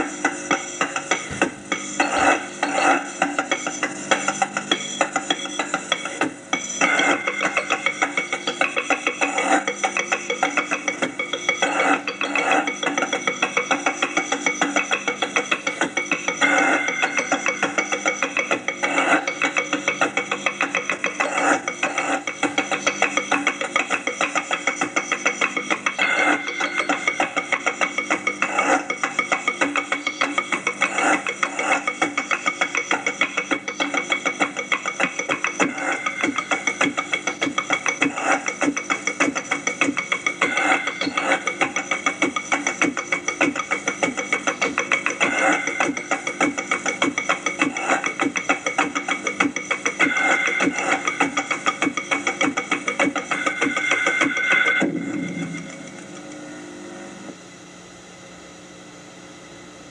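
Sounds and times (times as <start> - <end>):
faint steady hum: 0.0 - 59.9
sustained musical tones: 1.4 - 57.3.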